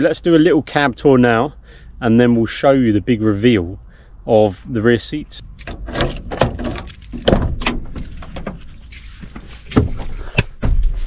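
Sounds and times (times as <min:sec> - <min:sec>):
clicks of door lock and handle: 0:05.6 - 0:08.9
keys jangling: 0:05.6 - 0:10.2
knocks and thumps of cab door: 0:05.8 - 0:08.6.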